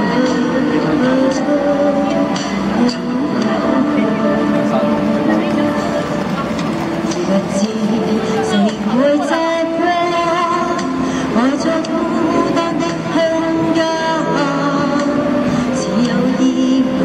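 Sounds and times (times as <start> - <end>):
woman singing into a microphone: 0.0 - 4.6, 5.3 - 17.0
backing track music: 0.0 - 17.0.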